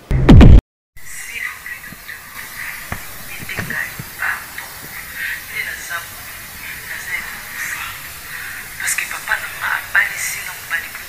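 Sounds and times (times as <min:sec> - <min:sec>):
steady background hiss: 0:01.0 - 0:11.0.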